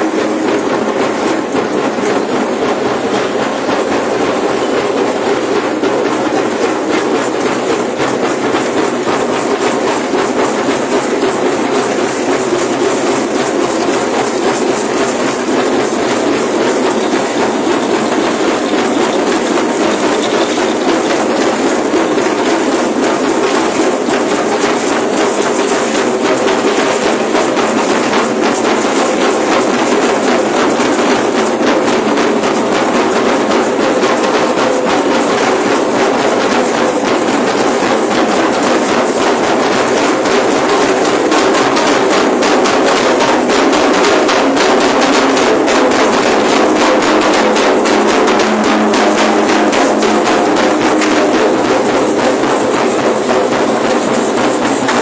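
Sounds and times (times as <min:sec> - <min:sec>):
many rattles shaken: 0:00.0 - 0:55.0.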